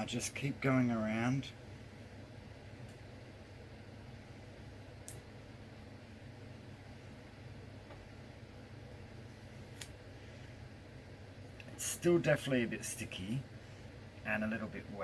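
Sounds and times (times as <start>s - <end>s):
low steady hum: 0.0s - 15.0s
small faint clicks: 5.0s - 5.3s.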